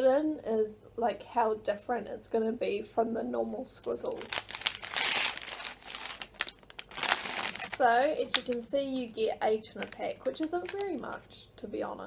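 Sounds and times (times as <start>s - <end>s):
plastic packet crinkling: 3.8s - 11.1s.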